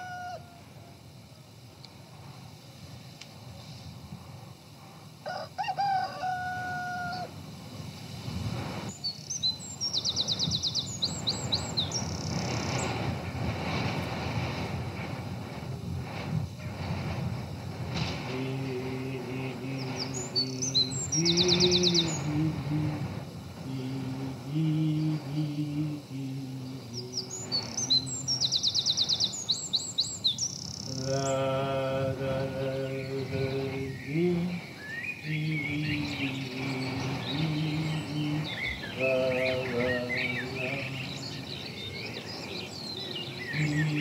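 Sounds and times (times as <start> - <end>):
rooster crowing: 0.0 - 1.0, 5.2 - 7.5
songbirds chirping in trills: 0.0 - 44.0
steady hiss: 0.0 - 44.0.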